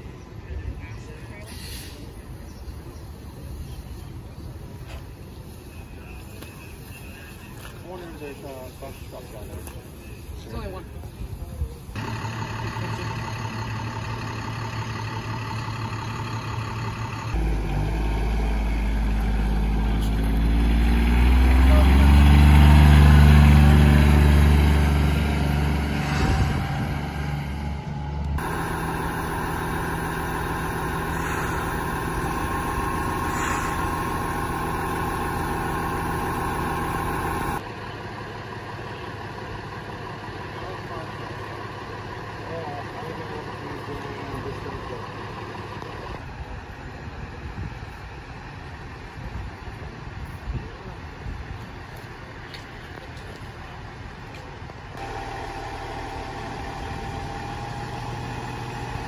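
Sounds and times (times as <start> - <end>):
diesel engines idling: 0.0 - 26.0, 26.6 - 59.0
pump engine running: 12.0 - 17.8, 28.4 - 46.1, 55.0 - 59.0
heavy truck engine revving: 12.0 - 46.2, 55.0 - 59.0
high whine: 27.8 - 37.6, 55.0 - 58.5.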